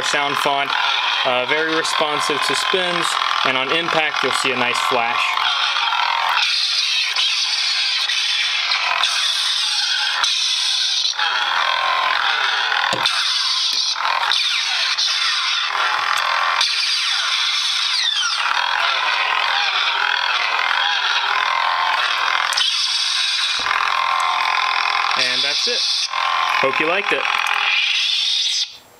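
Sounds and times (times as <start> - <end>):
lightsaber hum: 0.0 - 28.8.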